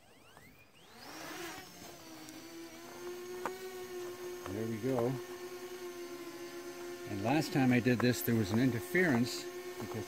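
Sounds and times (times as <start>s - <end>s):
drone motors whining: 0.0s - 10.0s.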